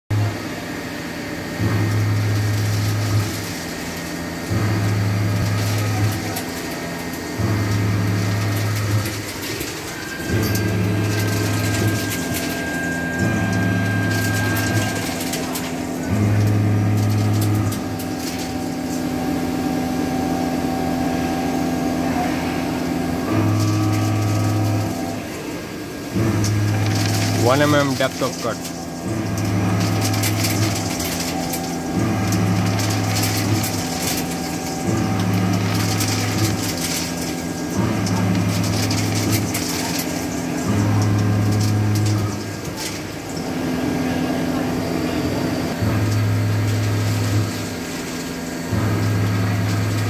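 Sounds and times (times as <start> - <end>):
low cutting hum: 0.1 - 50.0.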